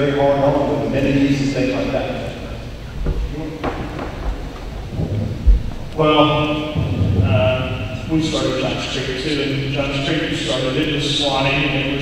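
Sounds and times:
microphone handling rumble and thumps: 0:02.8 - 0:08.2.

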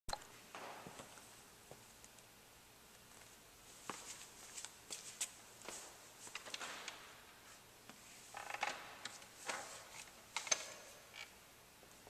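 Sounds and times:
footsteps: 0:00.5 - 0:02.0, 0:03.1 - 0:08.2.

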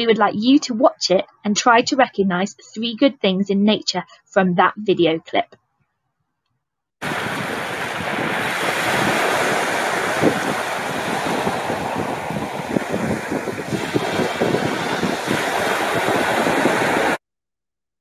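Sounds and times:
waves breaking on shingle: 0:07.0 - 0:17.2
wind on microphone: 0:07.0 - 0:17.2.

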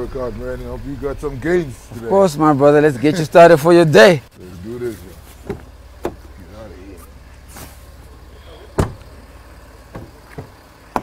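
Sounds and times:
low steady rumble: 0:00.0 - 0:11.0
thumps and knocks in car cabin: 0:05.4 - 0:06.3, 0:08.7 - 0:09.1, 0:09.9 - 0:11.0.

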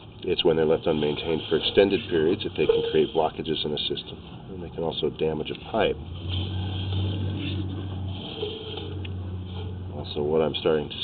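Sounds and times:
low engine hum: 0:05.5 - 0:11.0.

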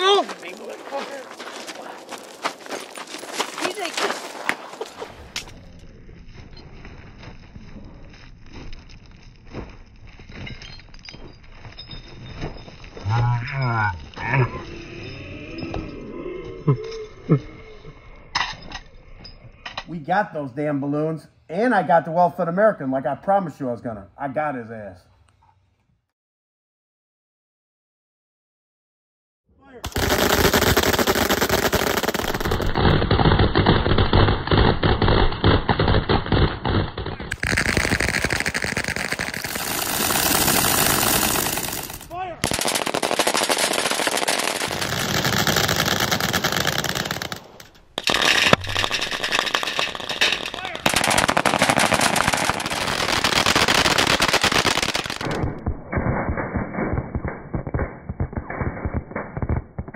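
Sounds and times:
machine guns firing full-auto bursts: 0:29.9 - 0:55.4.

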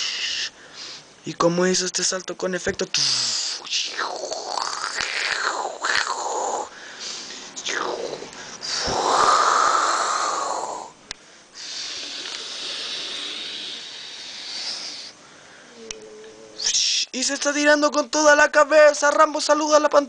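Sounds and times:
person making whooshing mouth sounds: 0:03.0 - 0:06.7, 0:07.6 - 0:11.0.

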